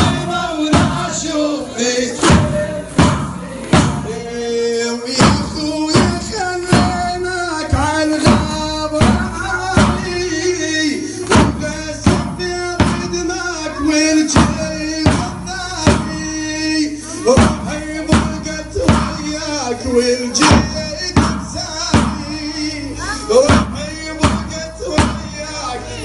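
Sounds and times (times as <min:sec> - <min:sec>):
man chanting into a microphone: 0:04.0 - 0:26.0.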